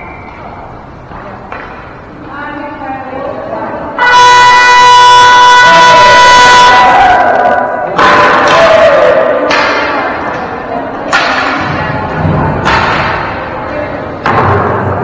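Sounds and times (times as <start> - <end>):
game horn blast: 4.0 - 7.4.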